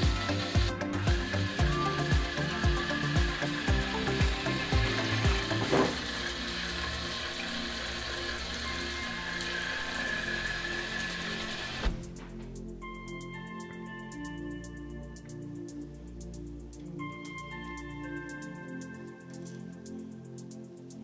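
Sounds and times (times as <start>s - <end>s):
small electric motor whining: 0.0s - 11.8s
background music with steady beat: 0.0s - 21.0s.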